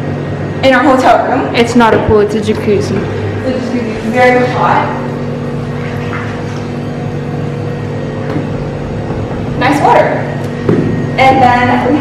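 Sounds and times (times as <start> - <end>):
jacuzzi pump motor humming: 0.0 - 12.0.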